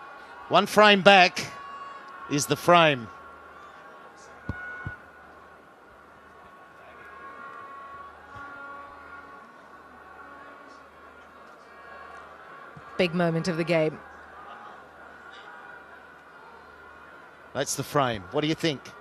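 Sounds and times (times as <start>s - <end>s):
stadium crowd murmur: 0.0s - 19.0s.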